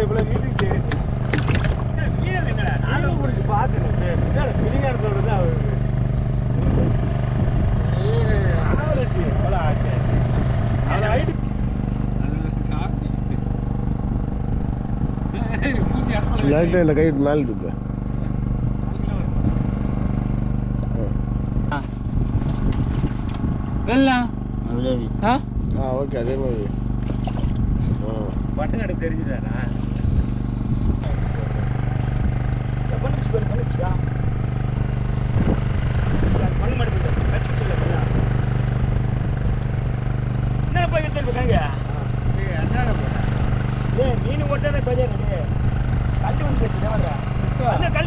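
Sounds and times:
boat engine idling: 0.0 - 48.0.

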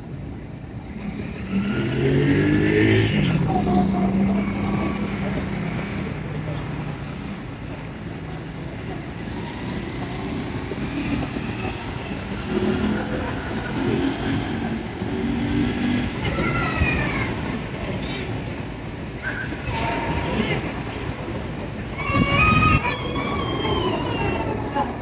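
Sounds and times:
indistinct distant voices: 0.0 - 25.0.

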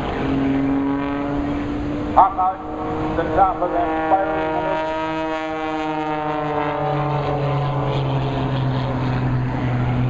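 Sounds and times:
stunt plane engine: 0.0 - 10.0.

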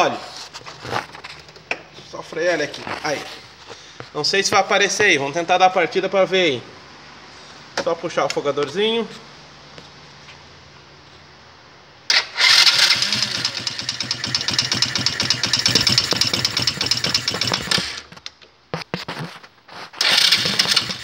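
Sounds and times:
quad engine starting: 12.1 - 18.2, 20.0 - 21.0.

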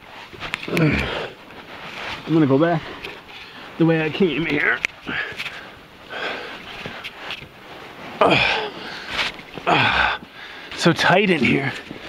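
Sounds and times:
person breathing hard: 0.7 - 1.4, 5.0 - 7.0, 8.2 - 10.8.

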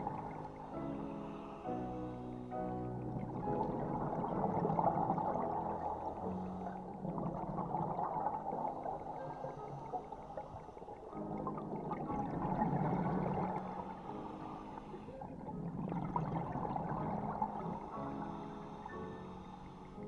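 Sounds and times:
underwater air bubbles gurgling: 0.0 - 20.0.

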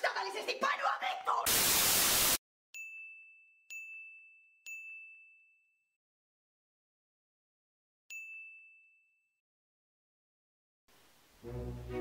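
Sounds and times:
burst of static hiss: 1.5 - 2.4.

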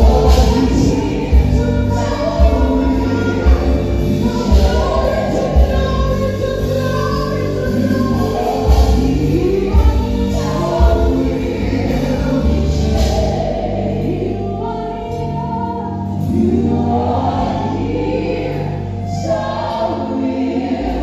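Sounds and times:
band playing: 0.0 - 21.0
choir-like backing voices: 0.0 - 21.0
woman singing lead: 0.0 - 21.0.

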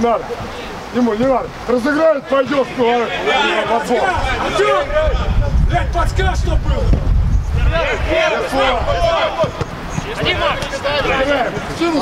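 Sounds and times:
men shouting: 1.9 - 6.9, 7.6 - 12.0.

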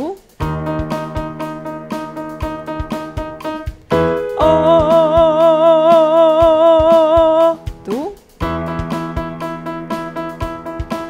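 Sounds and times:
keyboard accompaniment with beat: 0.0 - 11.0
woman singing with vibrato: 4.4 - 8.2.

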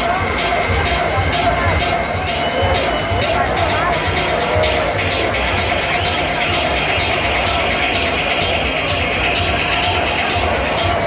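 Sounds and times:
crowd voices: 0.0 - 11.0
loud electronic dance music: 0.0 - 11.0.

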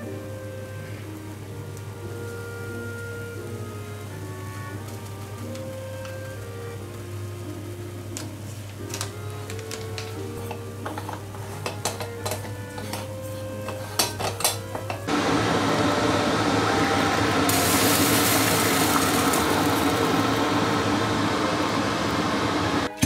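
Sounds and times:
background music: 0.0 - 23.0
moka pot hissing: 0.0 - 23.0.

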